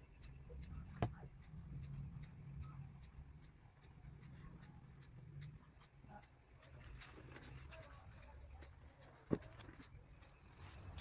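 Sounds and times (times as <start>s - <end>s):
faint low hum: 0.0s - 11.0s
soft ticks: 0.0s - 11.0s.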